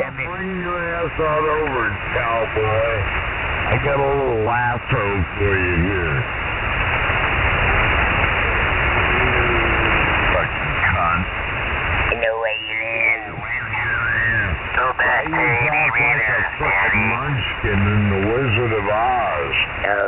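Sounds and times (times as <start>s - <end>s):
distorted radio voice: 0.0s - 3.1s, 3.7s - 6.3s, 8.9s - 11.3s, 12.0s - 20.0s
radio hiss: 0.0s - 20.0s.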